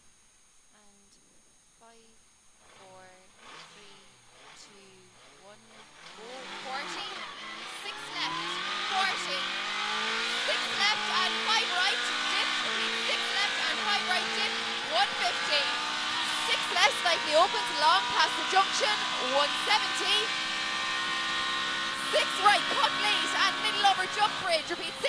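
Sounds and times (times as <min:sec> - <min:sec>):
car engine accelerating hard: 0:02.6 - 0:04.6, 0:05.2 - 0:25.0.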